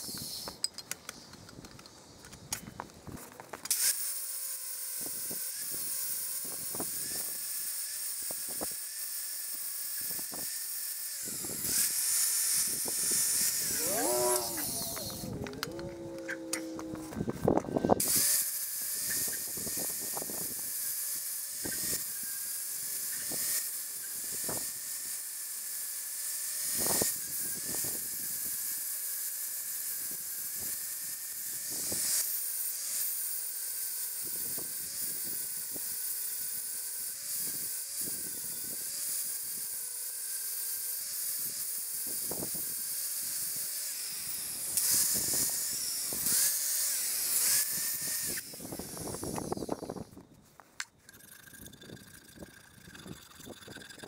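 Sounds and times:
angle grinder grinding metal: 0.0s - 1.9s, 2.5s - 54.0s.

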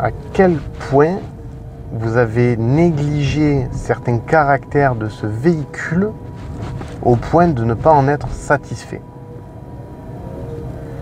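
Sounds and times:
faint thin whine: 0.0s - 11.0s
road and tyre rumble in car cabin: 0.0s - 11.0s.

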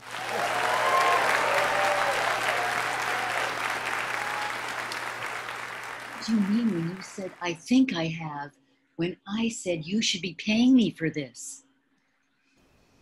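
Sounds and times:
audience applauding: 0.0s - 7.4s
audience cheering: 0.0s - 7.4s.

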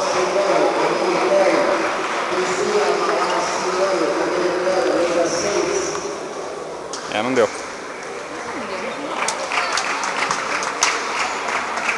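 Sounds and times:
spectators applauding: 9.1s - 11.9s.

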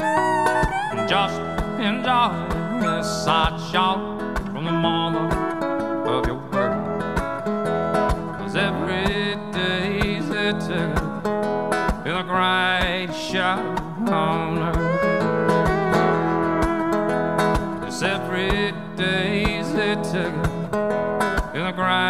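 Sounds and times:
fiddle sliding melody: 0.0s - 3.5s, 4.6s - 8.4s, 14.8s - 17.6s
strummed acoustic guitar: 0.0s - 22.0s.

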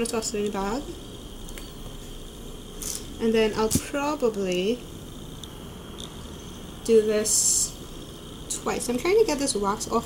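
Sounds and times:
faint steady hum: 0.0s - 10.0s
short soft hiss: 2.7s - 4.0s.

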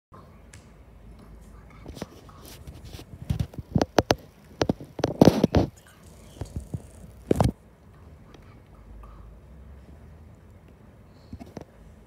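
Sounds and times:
rubbing and scraping: 1.8s - 7.6s.

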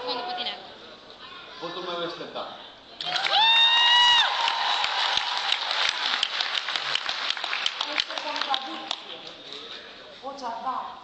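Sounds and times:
audience applauding and cheering: 3.0s - 9.2s
high held whoop: 3.1s - 5.4s.

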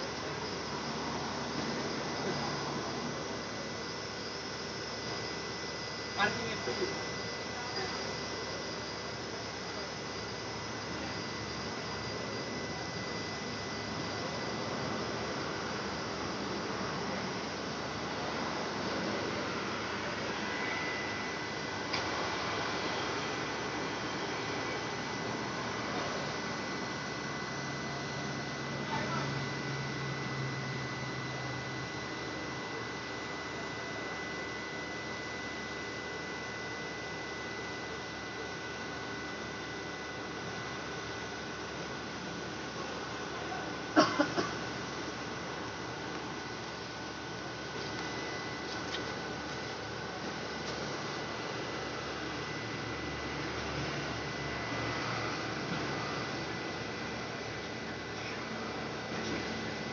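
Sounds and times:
faint high whine: 0.0s - 59.9s.

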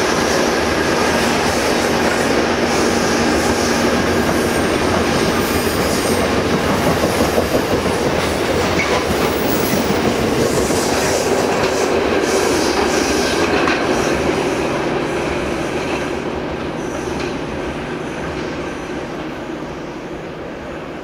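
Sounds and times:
freight train wheels on rails: 0.0s - 21.0s.

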